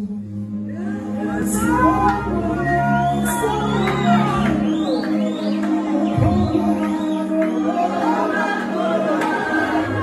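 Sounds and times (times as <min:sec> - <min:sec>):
group singing gospel song: 0:00.8 - 0:10.0.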